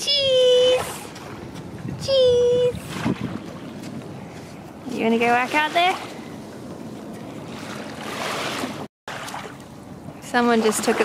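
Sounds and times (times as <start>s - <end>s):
wind on microphone: 0.0s - 8.9s
small waves lapping on shore: 0.4s - 11.0s.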